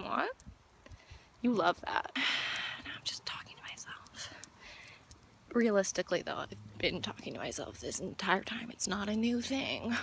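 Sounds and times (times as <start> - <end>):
breathy whispering: 2.6 - 5.0.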